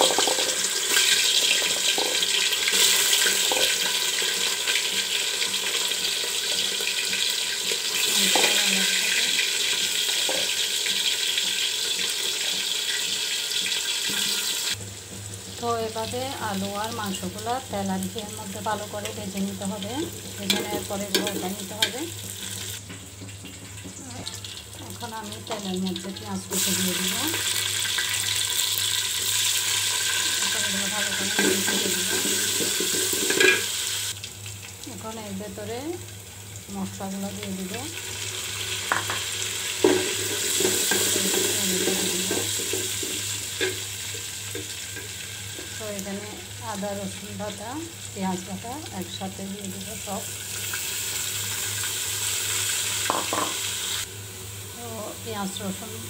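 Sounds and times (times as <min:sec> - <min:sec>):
onions sizzling in hot oil: 0:00.0 - 0:56.0.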